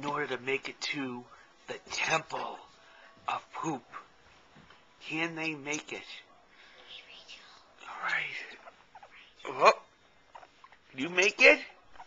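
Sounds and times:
person whispering: 6.6s - 9.8s.

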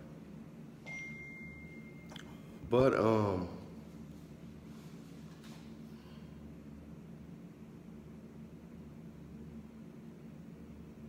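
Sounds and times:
faint high-pitched beep: 0.8s - 2.1s.

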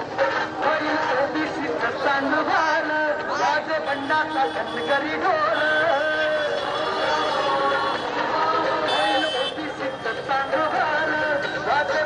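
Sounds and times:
crowd talking and calling out: 0.0s - 12.0s
music playing: 0.0s - 12.0s.

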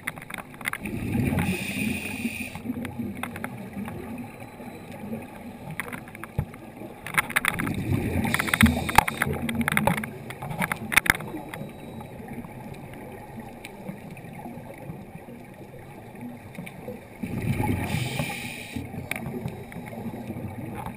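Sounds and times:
exhaled bubbles gurgling: 0.8s - 20.9s
diver breathing through regulator: 1.1s - 2.7s, 8.1s - 9.2s, 17.7s - 18.9s.

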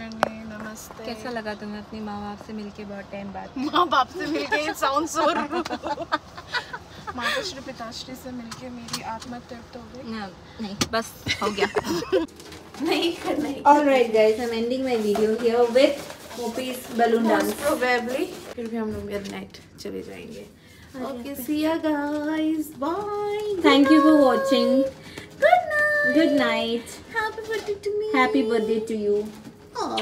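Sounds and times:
woman talking: 0.0s - 5.8s, 7.1s - 12.2s, 12.8s - 30.0s
woman singing: 21.0s - 26.4s.

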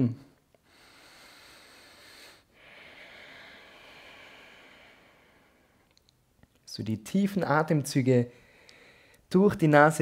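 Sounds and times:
man breathing through nose: 0.6s - 5.9s, 8.4s - 9.3s.

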